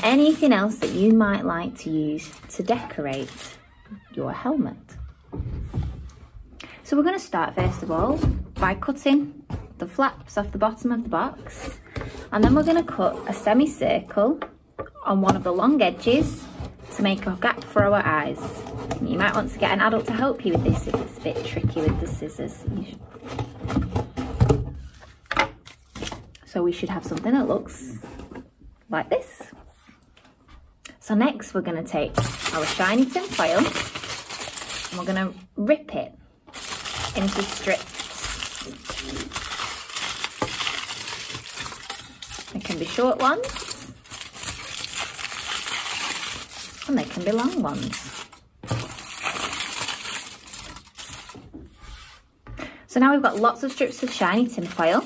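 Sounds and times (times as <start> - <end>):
kitchen foil crinkling: 0.0 - 1.3, 2.1 - 3.6, 32.2 - 35.3, 36.5 - 51.4, 53.2 - 55.0.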